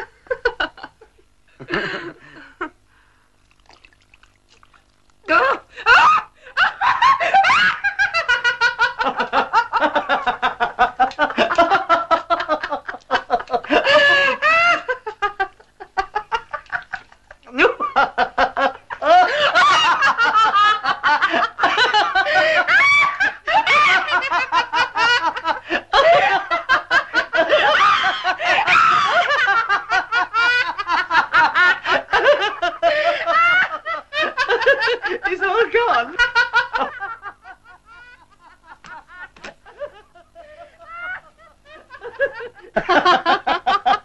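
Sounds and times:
people laughing and giggling: 0.0 - 2.8, 5.2 - 44.0.

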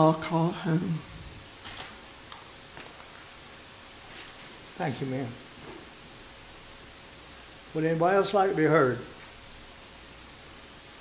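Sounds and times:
room hiss: 0.0 - 11.0
paper rustling and clicks: 1.6 - 3.1.

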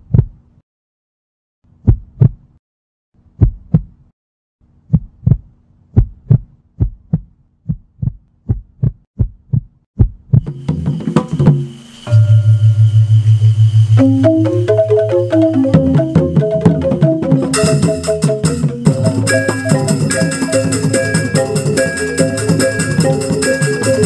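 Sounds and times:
heartbeat thumps: 0.0 - 0.4, 1.7 - 2.5, 3.4 - 4.0, 4.9 - 11.3
droning music swell: 12.1 - 15.2
pulsing low tone: 12.1 - 24.0.

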